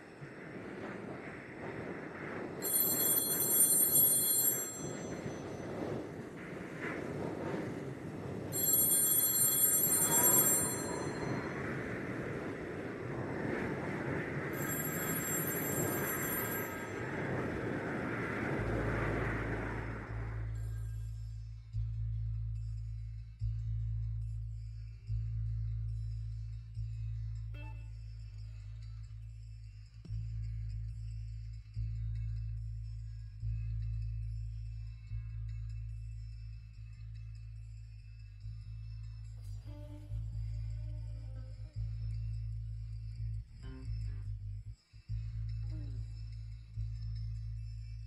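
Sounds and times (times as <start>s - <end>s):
steady rushing noise: 0.0s - 21.1s
telephone bell ringing: 2.6s - 5.7s, 8.5s - 12.1s, 14.6s - 17.6s
low bass drone: 18.4s - 48.0s.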